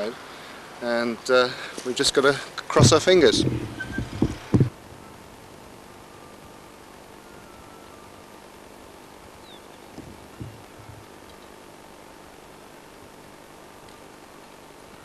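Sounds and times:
steady hiss: 0:00.0 - 0:15.0
low thumps: 0:02.8 - 0:04.8.

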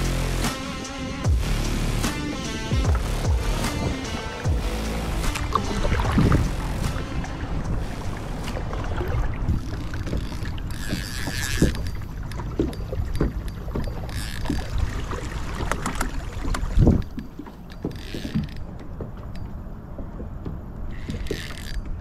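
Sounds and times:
low rumble: 0:00.0 - 0:10.7
water lapping at kayak hull: 0:00.6 - 0:22.0
paddle knocking against boat: 0:05.3 - 0:07.7, 0:08.5 - 0:22.0.

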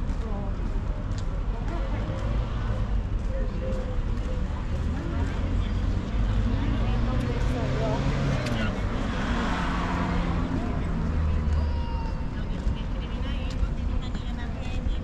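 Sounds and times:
passers-by talking: 0:00.0 - 0:15.0
traffic rumble: 0:00.0 - 0:15.0
vehicle passing: 0:01.7 - 0:15.0.

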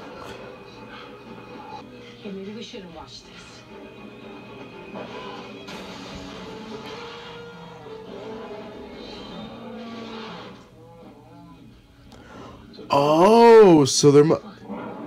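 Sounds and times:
film music from television: 0:00.0 - 0:15.0.

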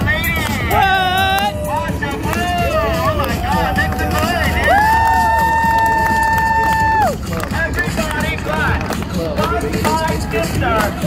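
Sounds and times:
street performer shouting: 0:00.0 - 0:08.7
city and crowd rumble: 0:00.0 - 0:11.0.

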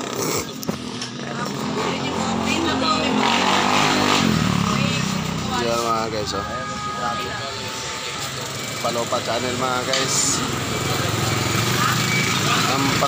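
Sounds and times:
small motorcycle passing by: 0:00.2 - 0:05.9, 0:08.0 - 0:13.0.

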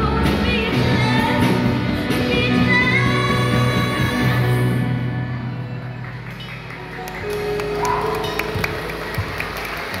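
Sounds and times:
stage background noise: 0:00.0 - 0:10.0.

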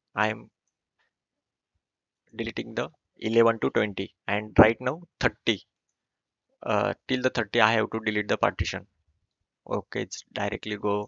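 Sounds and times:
person speaking: 0:00.2 - 0:00.4, 0:02.4 - 0:05.6, 0:06.6 - 0:08.8, 0:09.7 - 0:11.0.

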